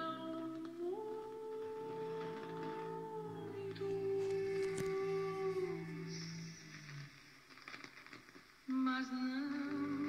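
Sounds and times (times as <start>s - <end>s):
song over am radio speaker: 0.0s - 10.0s.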